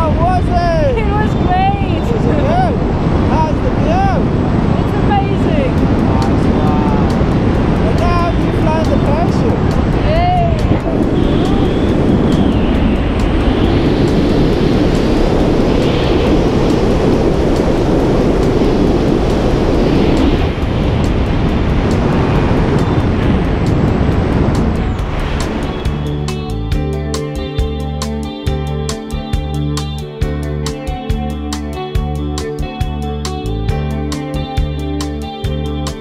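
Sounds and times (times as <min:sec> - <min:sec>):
air rushing over microphone: 0:00.0 - 0:27.0.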